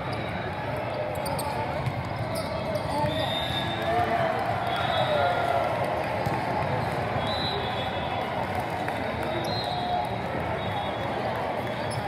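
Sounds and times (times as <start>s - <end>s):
babble of players and spectators: 0.0s - 12.0s
sneaker squeaks on court: 1.1s - 3.2s
referee whistle: 2.9s - 3.9s, 7.2s - 8.1s, 9.3s - 10.0s.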